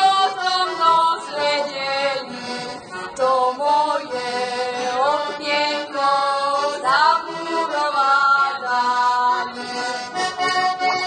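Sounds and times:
button accordion folk music: 0:00.0 - 0:11.0.

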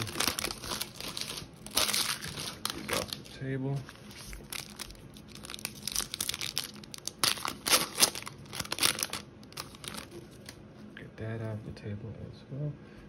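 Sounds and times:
foil wrapper tearing and crinkling: 0:00.0 - 0:10.6.

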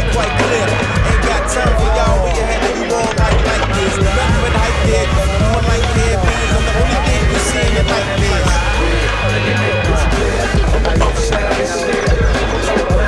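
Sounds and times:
loud music with heavy bass: 0:00.0 - 0:13.0
skateboard clacks: 0:00.1 - 0:08.6, 0:10.1 - 0:13.0.

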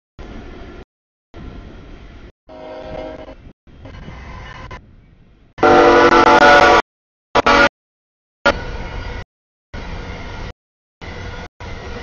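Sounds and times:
freight train rumbling: 0:00.2 - 0:06.8, 0:08.4 - 0:12.0
locomotive horn: 0:02.5 - 0:03.5, 0:05.6 - 0:07.7.

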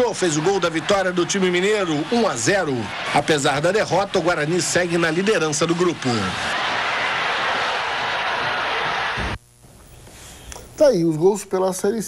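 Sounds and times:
stadium crowd noise: 0:00.0 - 0:09.4.

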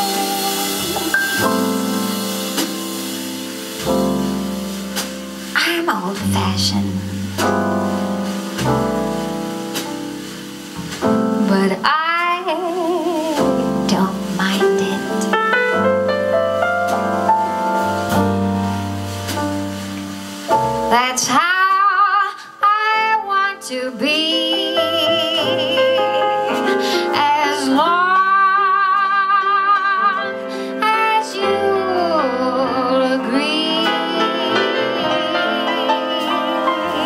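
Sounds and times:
woman singing with vibrato: 0:00.0 - 0:01.9, 0:05.6 - 0:07.1, 0:11.4 - 0:15.2, 0:20.9 - 0:37.0
walking upright bass: 0:00.0 - 0:02.9, 0:03.8 - 0:22.2, 0:30.8 - 0:37.0
piano chords: 0:00.0 - 0:37.0.

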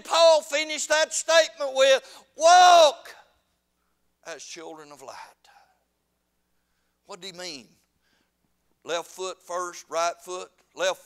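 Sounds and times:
man speaking: 0:00.0 - 0:03.4, 0:04.2 - 0:05.7, 0:07.0 - 0:07.8, 0:08.8 - 0:11.0.

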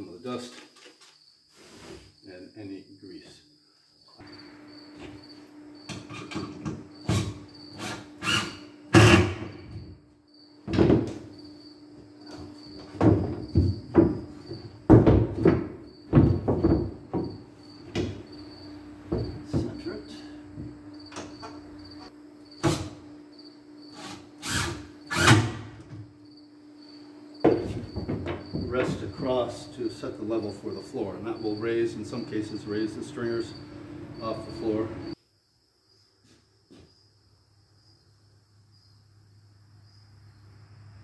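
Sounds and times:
cricket chirping: 0:00.0 - 0:41.0.

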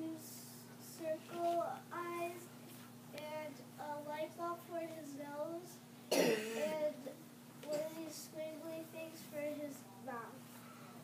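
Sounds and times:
steady low hum: 0:00.0 - 0:11.0
child singing sing-song notes: 0:03.2 - 0:10.3
loud cough: 0:06.1 - 0:06.8.

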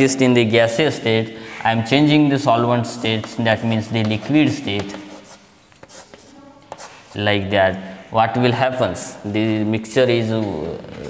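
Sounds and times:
chalk taps: 0:02.8 - 0:07.2
chalk scratching on chalkboard: 0:02.8 - 0:07.4.

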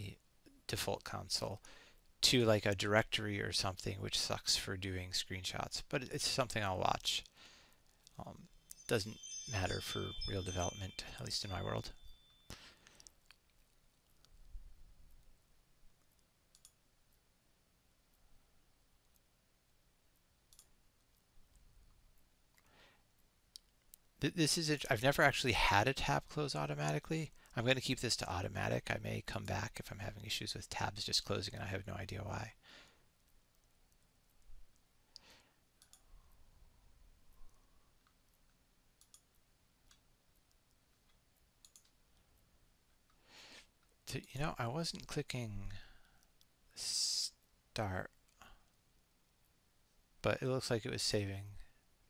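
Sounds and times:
computer mouse clicks: 0:16.0 - 0:17.2, 0:19.0 - 0:22.6, 0:33.2 - 0:36.1, 0:37.3 - 0:42.0.

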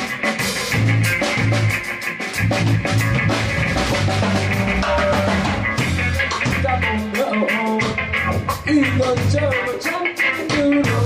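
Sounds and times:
drum and cymbal hits: 0:00.0 - 0:09.4
rock band playing: 0:00.0 - 0:11.0
repeating bass line: 0:02.4 - 0:07.1.

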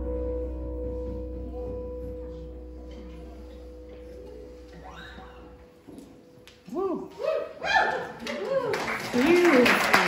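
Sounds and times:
low bass tone: 0:00.0 - 0:05.9.

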